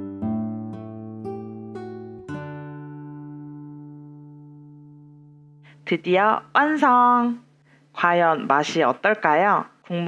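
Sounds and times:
acoustic guitar: 0:00.0 - 0:06.5.

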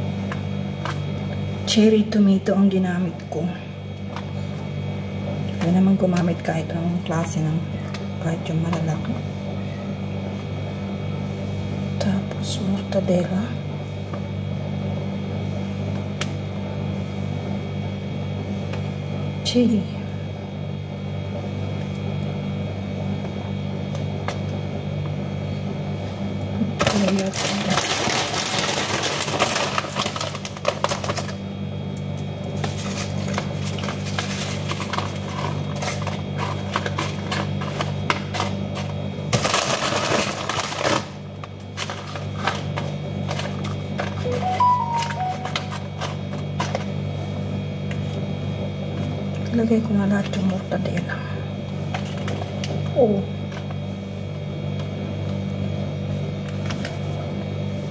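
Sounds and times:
steady low hum: 0:00.0 - 0:57.9
tortilla chips crackling: 0:26.8 - 0:31.4, 0:32.4 - 0:46.8.

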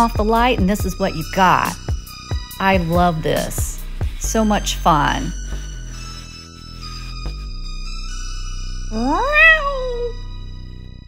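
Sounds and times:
background music: 0:00.0 - 0:11.0
cat meow: 0:09.0 - 0:10.2.

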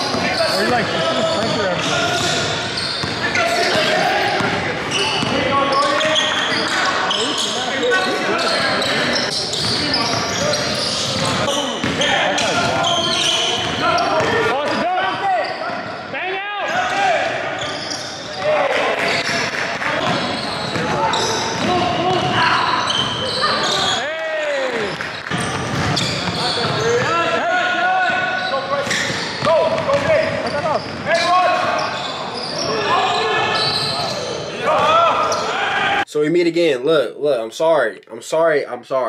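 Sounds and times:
sneakers squeaking: 0:00.0 - 0:16.1, 0:16.7 - 0:24.1, 0:24.8 - 0:35.6
players calling out: 0:00.0 - 0:36.1
basketball dribbling: 0:25.4 - 0:27.0, 0:28.9 - 0:31.0.

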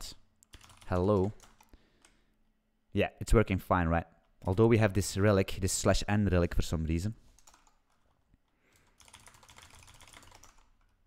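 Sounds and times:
computer keyboard typing: 0:00.4 - 0:02.2, 0:07.4 - 0:11.0.

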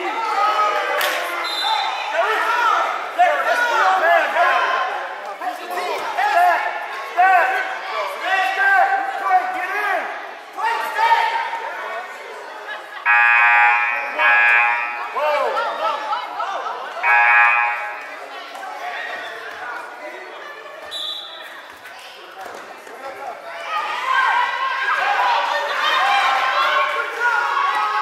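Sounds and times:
voices in gymnasium: 0:00.0 - 0:28.0
scoreboard horn blasts: 0:17.0 - 0:18.1.

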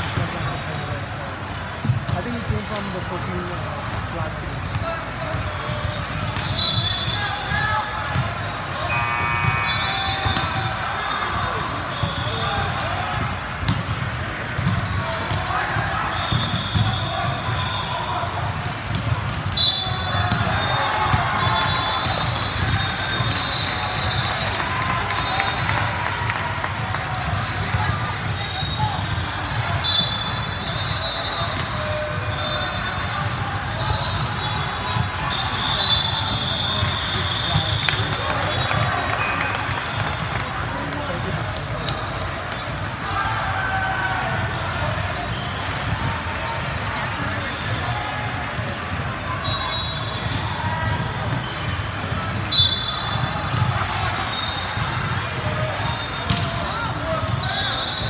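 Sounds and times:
many people talking: 0:00.0 - 0:58.0
sneakers squeaking on floor: 0:00.4 - 0:02.6, 0:05.4 - 0:12.7, 0:13.3 - 0:24.2, 0:27.6 - 0:38.7, 0:45.2 - 0:46.1, 0:49.3 - 0:58.0.

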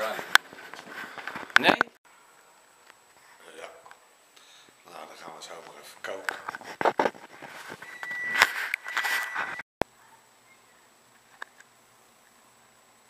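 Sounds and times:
steady high tone: 0:07.8 - 0:09.6.

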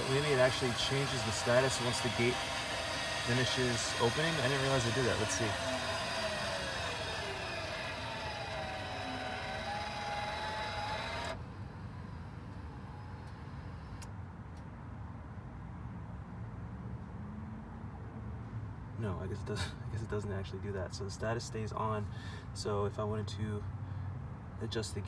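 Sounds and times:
gate opener motors whining: 0:00.0 - 0:14.1.

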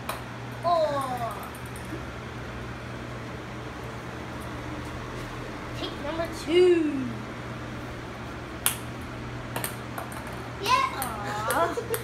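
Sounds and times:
fan humming: 0:00.0 - 0:12.0.

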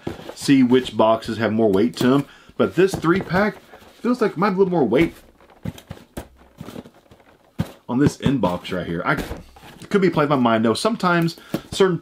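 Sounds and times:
cardboard box being shaken: 0:00.0 - 0:11.9
boxes knocking inside: 0:00.0 - 0:12.0.

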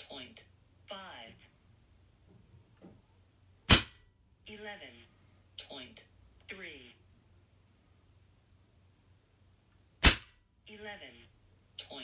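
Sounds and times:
air rifle shot: 0:03.7 - 0:04.0, 0:10.0 - 0:10.3.

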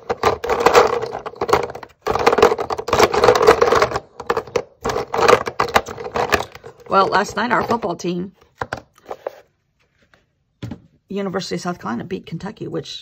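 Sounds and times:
plastic sticks clattering in tub: 0:00.0 - 0:09.2.

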